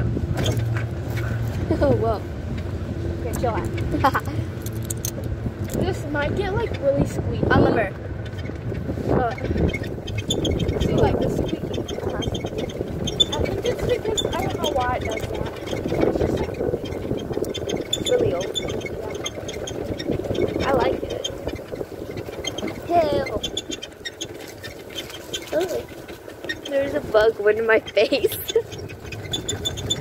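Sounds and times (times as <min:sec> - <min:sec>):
golf cart rumbling and rattling: 0:00.0 - 0:30.0
wind on microphone: 0:00.0 - 0:30.0
voices calling out: 0:00.4 - 0:30.0.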